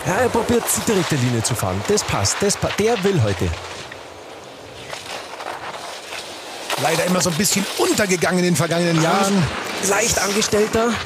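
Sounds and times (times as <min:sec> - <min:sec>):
skis scraping icy snow: 0:00.0 - 0:11.0.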